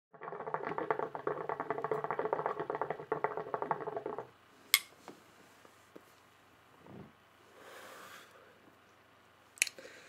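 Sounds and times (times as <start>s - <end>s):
hookah water bubbling: 0.1s - 4.4s.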